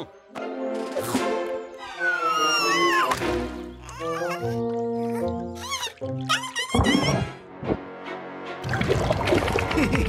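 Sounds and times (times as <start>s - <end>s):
cartoon background music: 0.0s - 10.0s
squeaky character vocalizations: 5.2s - 7.3s.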